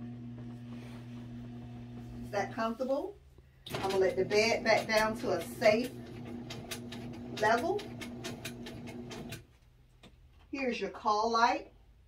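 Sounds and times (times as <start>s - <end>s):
bed lift motor humming and ticking: 0.0s - 2.3s, 3.7s - 9.4s.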